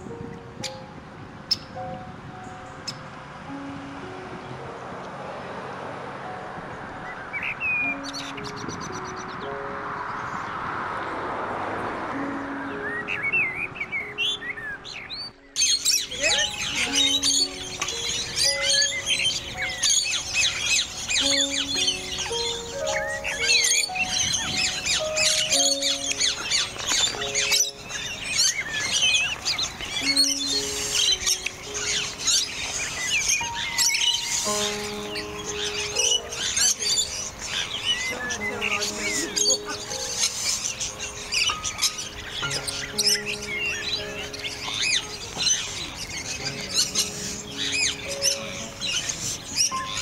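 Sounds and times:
small birds chirping: 0.0 - 3.1, 7.0 - 10.6, 12.3 - 50.0
slow melodic background music: 0.0 - 50.0.

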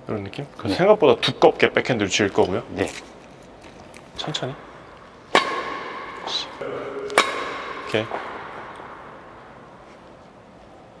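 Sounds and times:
badminton racket hitting shuttlecock: 5.3 - 9.3.

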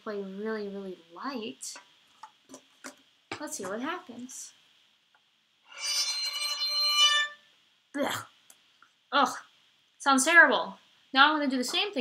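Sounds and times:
thin bowed violin note: 5.7 - 7.4.

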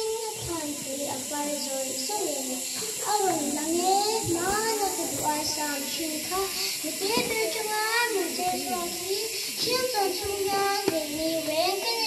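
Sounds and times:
girl chanting into a microphone: 0.0 - 12.0.

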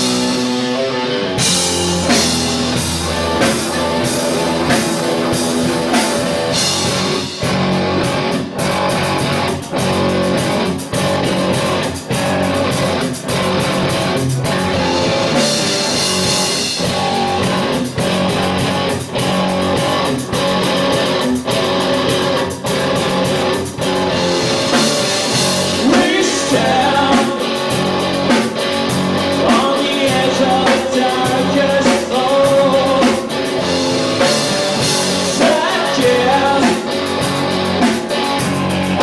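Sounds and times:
drum kit: 0.0 - 39.0
electric bass: 0.0 - 39.0
electric guitar riff: 0.0 - 39.0.

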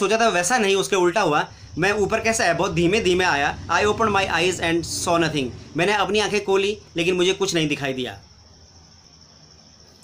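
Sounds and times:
person speaking: 0.0 - 8.3
cricket chirping: 0.0 - 10.0
low room hum: 0.0 - 10.0.

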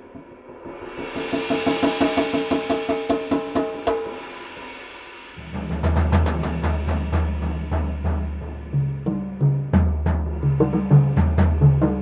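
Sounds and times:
cymbal wash: 0.0 - 12.0
drums played with felt mallets: 1.0 - 4.2, 5.4 - 12.0.

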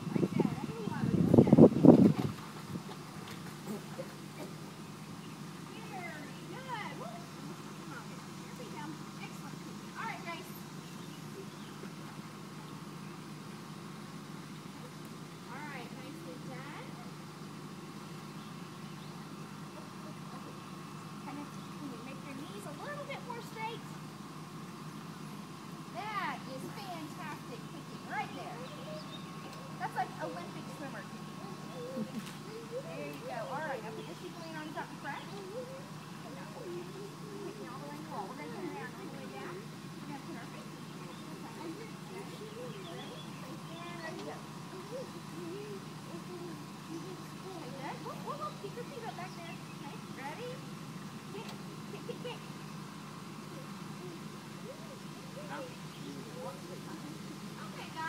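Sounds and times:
faint voices calling out: 0.0 - 58.0
steady low hum: 0.0 - 58.0.

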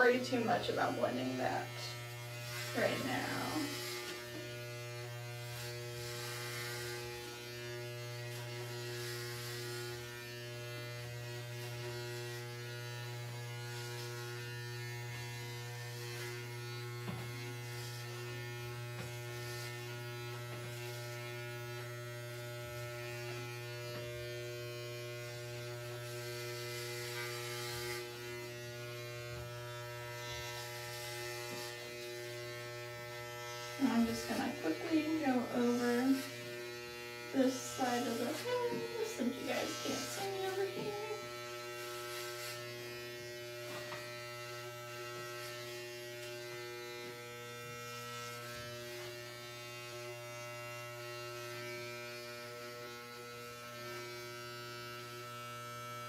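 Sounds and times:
electric hair clipper buzzing: 0.0 - 56.0.

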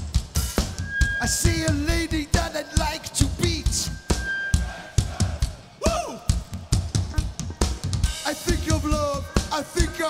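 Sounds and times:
punk rock band playing live: 5.4 - 10.0.

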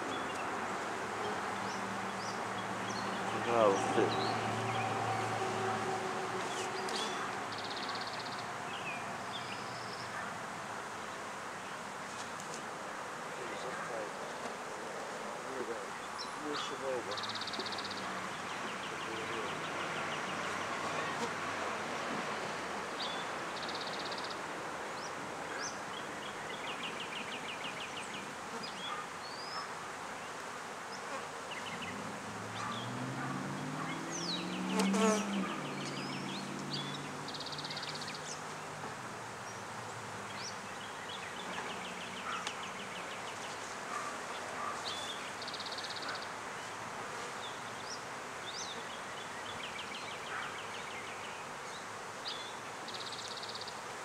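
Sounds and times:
louder bee buzz: 30.5 - 36.9
bees humming: 33.6 - 37.5.

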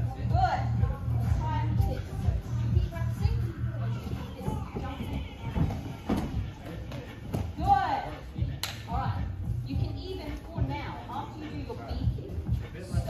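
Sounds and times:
background music: 0.0 - 13.0
feet thudding on mats: 4.0 - 7.8.

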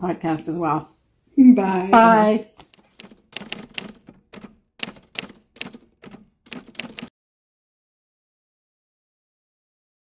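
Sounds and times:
typewriter keys clacking: 2.6 - 7.1.

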